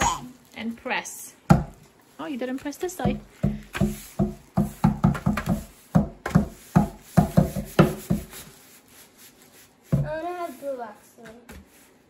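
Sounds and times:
hands patting paper: 0:00.0 - 0:12.0.

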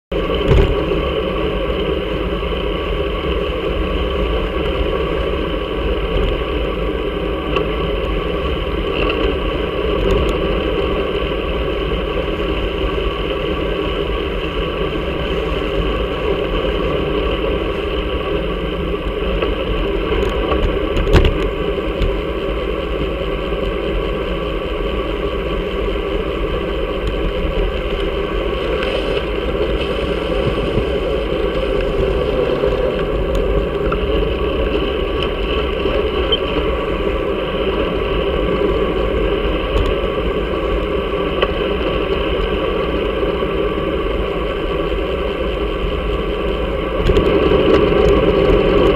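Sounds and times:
road rumble: 0:00.1 - 0:48.9
wind noise: 0:00.1 - 0:48.9.

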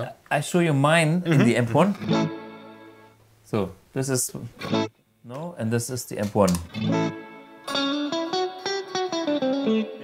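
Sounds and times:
electric guitar ringing: 0:02.0 - 0:03.2, 0:04.6 - 0:04.9, 0:06.7 - 0:10.0.

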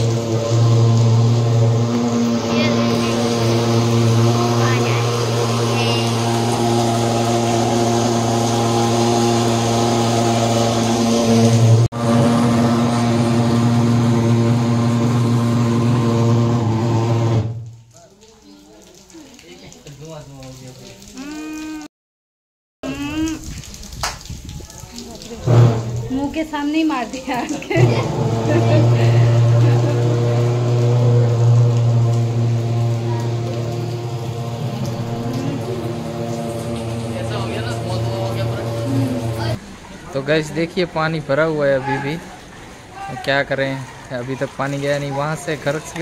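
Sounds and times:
fogging machine buzzing drone: 0:00.0 - 0:17.7, 0:27.8 - 0:39.6.

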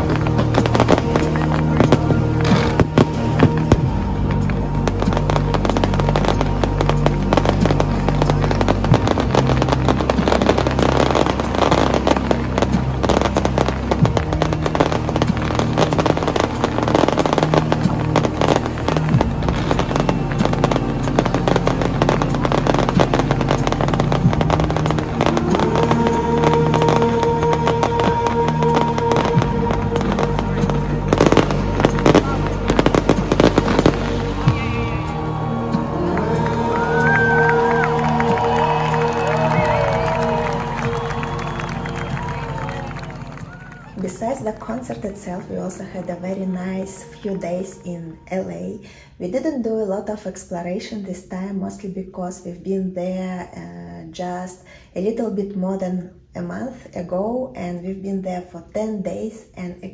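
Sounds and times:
fireworks bangs and crackles: 0:00.0 - 0:47.8
music: 0:00.0 - 0:59.9.

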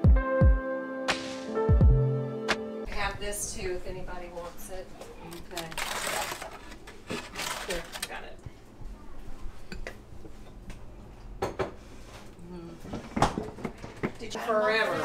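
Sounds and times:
aluminium foil crinkling: 0:05.2 - 0:08.4.

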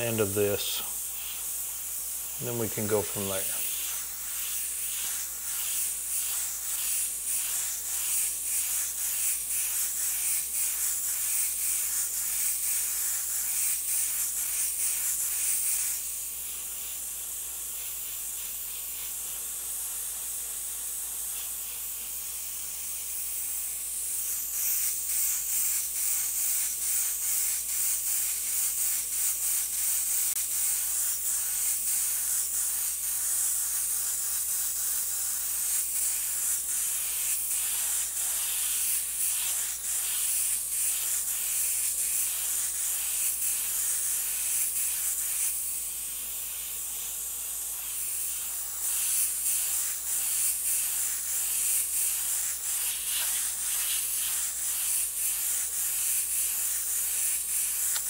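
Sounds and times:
airbrush hissing in pulses: 0:00.0 - 0:58.0.

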